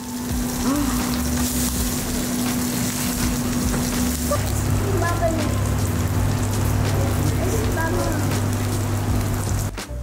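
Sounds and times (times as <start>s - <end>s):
meat sizzling on a hot platter: 0.0s - 9.8s.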